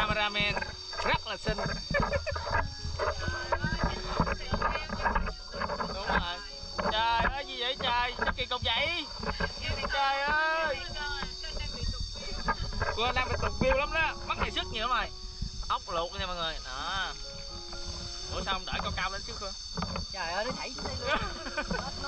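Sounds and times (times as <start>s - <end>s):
people talking and laughing: 0.0s - 17.6s, 20.2s - 22.0s
high insect drone: 0.0s - 22.0s.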